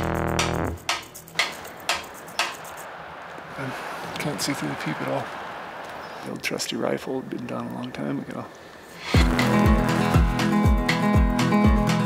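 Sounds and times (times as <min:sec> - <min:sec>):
sharp ticks: 0:00.0 - 0:03.5
faint background hiss: 0:01.1 - 0:09.2.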